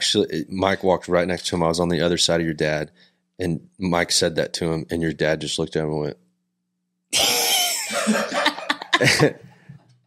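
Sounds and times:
person laughing: 7.2s - 9.6s.

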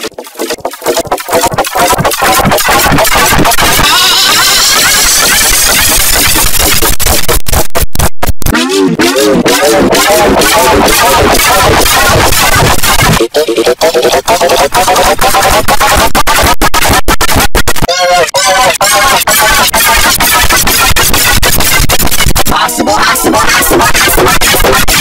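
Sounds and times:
harsh distorted layered audio: 0.0s - 25.0s
pitched voice-like line: 1.8s - 6.2s, 8.5s - 17.0s, 17.8s - 25.0s.

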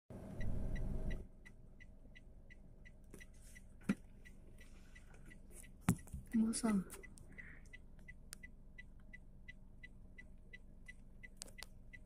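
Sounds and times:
car engine and road rumble: 0.1s - 12.0s
steady high ticking: 0.4s - 12.0s.

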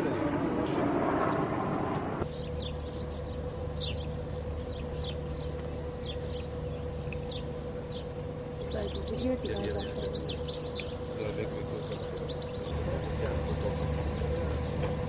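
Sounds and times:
loud rushing noise: 0.0s - 2.3s
steady hum with held tone: 0.0s - 15.0s
small birds chirping: 2.2s - 15.0s.

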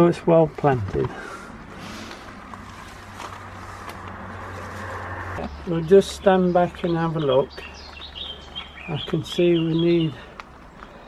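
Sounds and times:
car passing: 1.1s - 8.9s.

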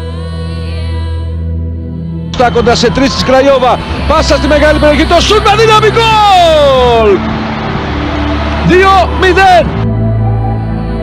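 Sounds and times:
commentator shouting goal: 2.4s - 7.2s.

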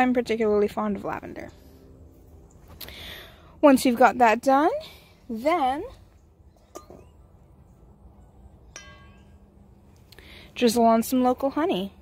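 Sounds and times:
sharp ringing clink: 8.6s - 9.9s.

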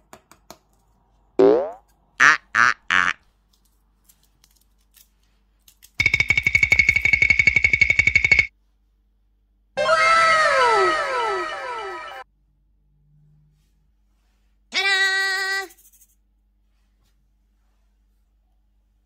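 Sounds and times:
cartoon falling glide: 9.8s - 12.2s
cascade of falling tones: 9.8s - 12.2s.

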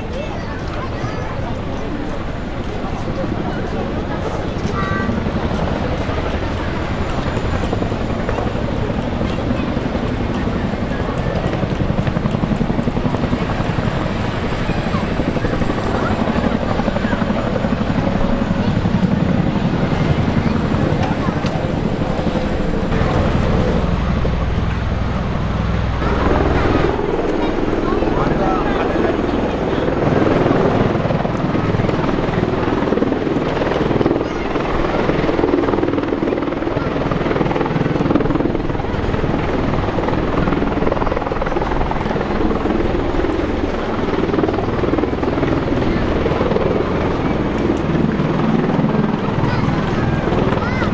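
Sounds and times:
helicopter rotor and engine noise: 0.0s - 50.9s.

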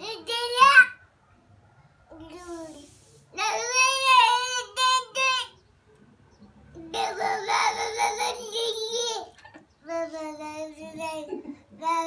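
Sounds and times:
toddler vocalising: 6.8s - 9.4s.

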